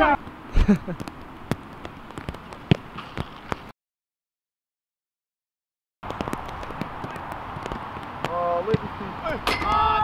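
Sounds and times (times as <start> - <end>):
football being kicked: 0.9 - 3.6.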